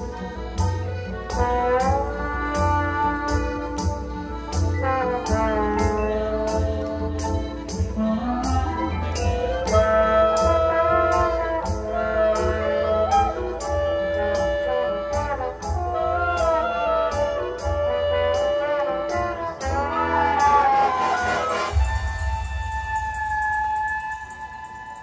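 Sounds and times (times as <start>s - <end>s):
marching band playing: 0.0s - 25.0s.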